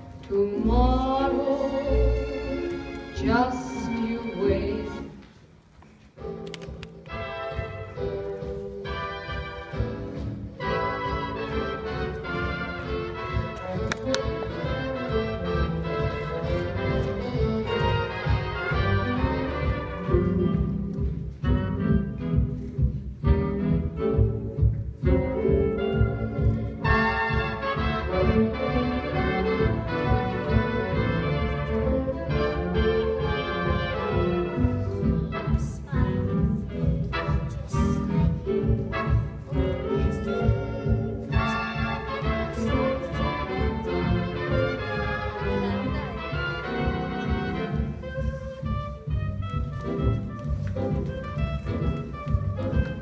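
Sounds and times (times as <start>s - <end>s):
orchestral music with strings: 0.0s - 53.0s.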